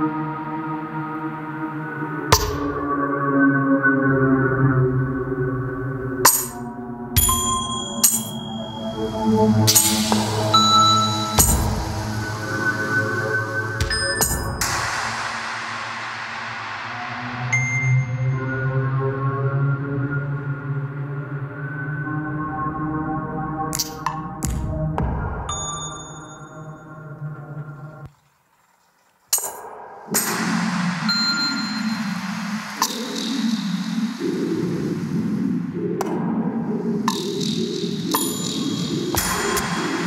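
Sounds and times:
bright high ringing tone: 7.2 - 9.0
synth wash: 8.6 - 23.4, 30.0 - 40.0
steady low bass tone: 9.0 - 15.0.

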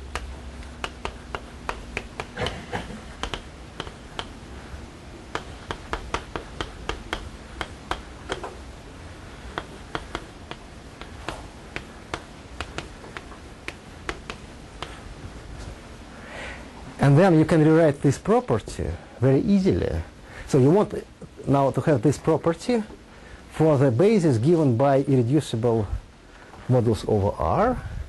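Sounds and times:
chalk tapping on blackboard: 0.0 - 4.4, 5.3 - 8.6, 9.4 - 15.1.

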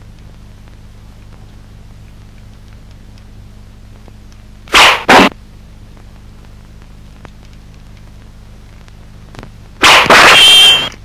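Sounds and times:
old film soundtrack hum: 0.0 - 11.0
sharp hissing bursts: 9.8 - 10.9.

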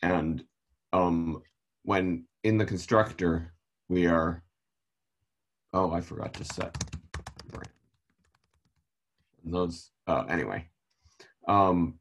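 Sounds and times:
typing on computer keyboard: 6.2 - 8.9.

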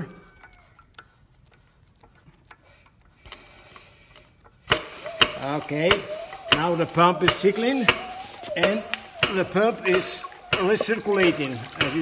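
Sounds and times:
scattered clicks: 0.0 - 12.0
air hissing: 2.6 - 12.0
thin whistle: 4.7 - 12.0.

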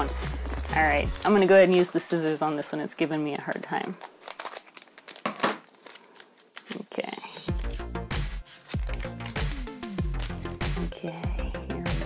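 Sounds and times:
foil ripping: 0.0 - 10.9
scissors snipping foil: 0.0 - 10.9
foil wrapper crinkling: 0.0 - 11.0.

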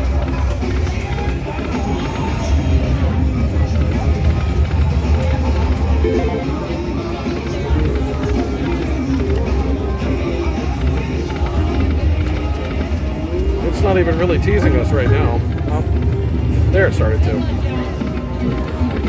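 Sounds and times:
slot machine game music: 0.6 - 19.0.

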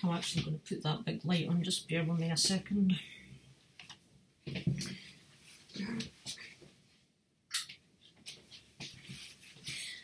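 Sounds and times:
faint knocks and rustles: 3.8 - 6.8.

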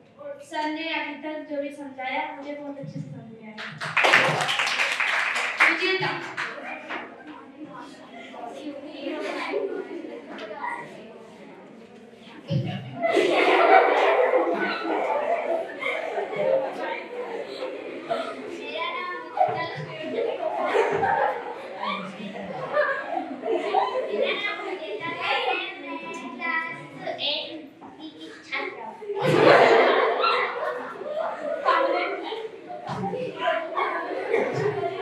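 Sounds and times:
girl speaking into microphone: 0.2 - 3.6, 5.6 - 6.4, 18.6 - 20.2, 24.2 - 29.2
girls giggling and laughing: 5.8 - 11.1, 12.4 - 26.1, 28.2 - 35.0.

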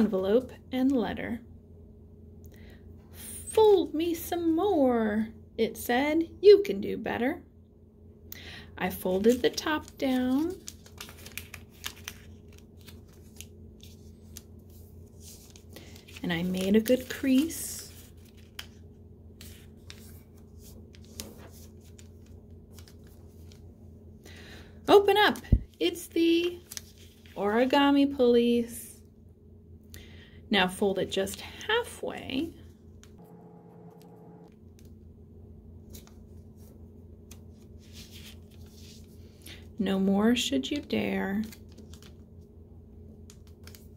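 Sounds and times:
low steady hum: 0.0 - 43.9
paper crinkling and rustling: 9.0 - 23.7, 25.3 - 27.7, 35.8 - 39.4, 41.4 - 42.3, 43.3 - 43.9.

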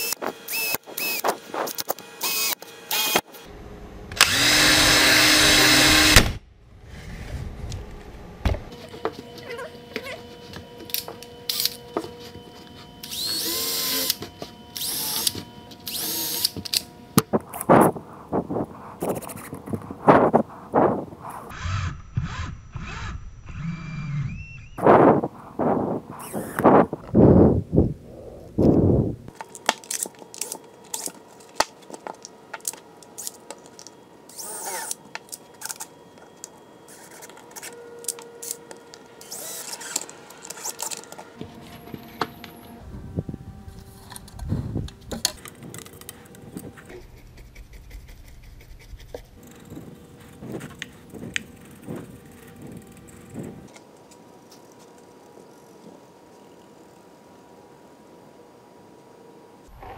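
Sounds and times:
cordless drill running in bursts: 0.0 - 1.2, 2.2 - 3.2, 4.2 - 6.2, 13.0 - 14.2, 14.8 - 16.6, 39.2 - 40.0.

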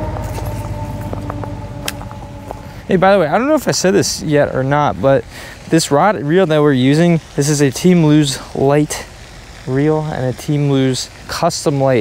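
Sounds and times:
fishing reel whirring and clicking: 2.8 - 12.0.

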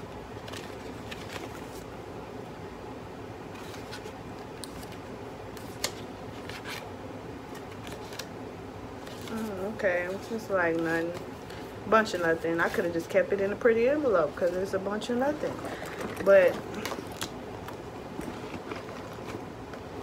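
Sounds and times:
low background hum: 0.0 - 20.0
paper crinkling and clicking: 0.4 - 1.9, 3.5 - 6.9, 7.5 - 8.3, 9.0 - 12.9, 15.5 - 19.9
paper snap: 5.6 - 6.8.

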